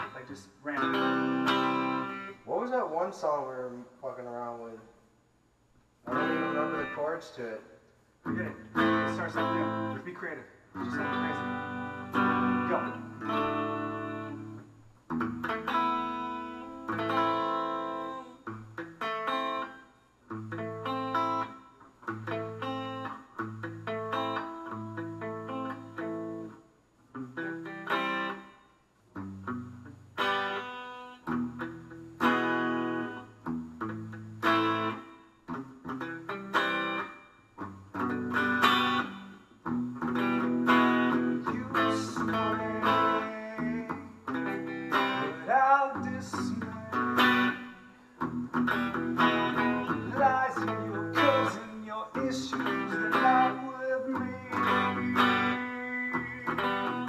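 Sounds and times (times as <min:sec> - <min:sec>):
acoustic guitar strumming: 0:00.0 - 0:02.4, 0:06.1 - 0:07.2, 0:08.2 - 0:26.5, 0:29.2 - 0:57.0.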